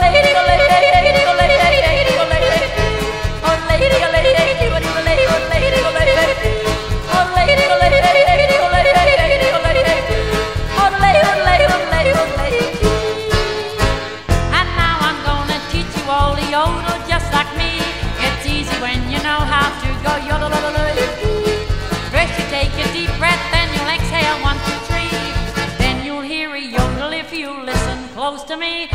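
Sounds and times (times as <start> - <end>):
woman yodelling: 0.0 - 2.8, 7.2 - 10.2
country band playing: 0.0 - 26.1, 26.8 - 27.1.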